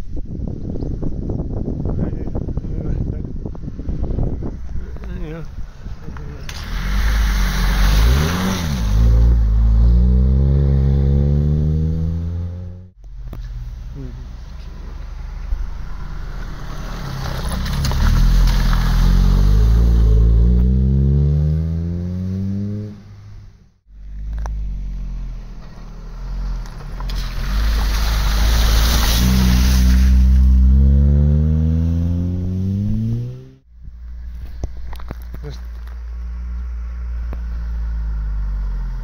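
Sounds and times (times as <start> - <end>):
rush of water spray: 6.4 - 9.4, 16.6 - 20.2, 26.9 - 30.7
car engine accelerating past: 6.4 - 12.9, 14.7 - 23.1, 24.3 - 33.6.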